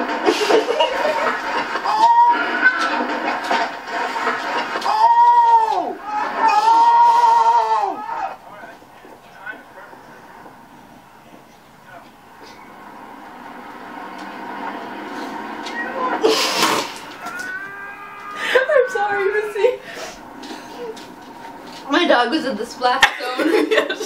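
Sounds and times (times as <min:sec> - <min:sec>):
loud burst of noise: 0:00.0 - 0:08.6, 0:12.2 - 0:22.6
high wavering vocal cry: 0:04.8 - 0:08.3, 0:17.2 - 0:21.0.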